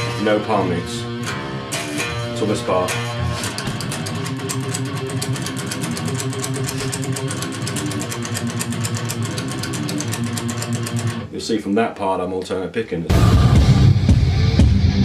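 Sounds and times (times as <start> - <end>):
distorted electric guitar metal riff: 0.0 - 11.3, 13.1 - 15.0.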